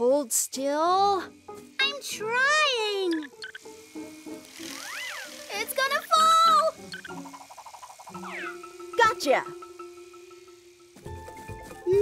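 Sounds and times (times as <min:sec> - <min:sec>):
children's background music: 0:00.0 - 0:12.0
whistle-like glide: 0:04.6 - 0:06.2
cartoon sound effects: 0:04.7 - 0:07.2.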